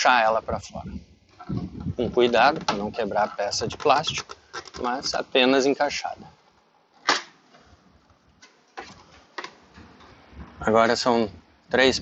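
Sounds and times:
plastic cover snapping free: 7.0s - 7.4s.

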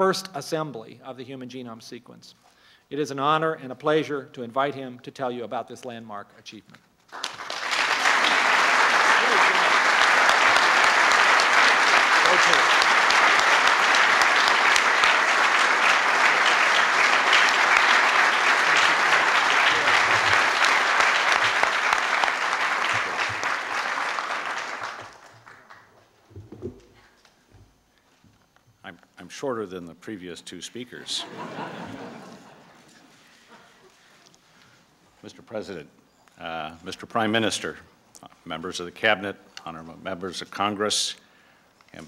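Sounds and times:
audience applauding: 7.1s - 26.0s.

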